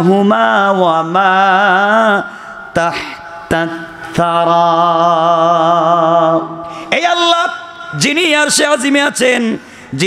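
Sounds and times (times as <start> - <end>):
man chanting verses: 0.0 - 10.0.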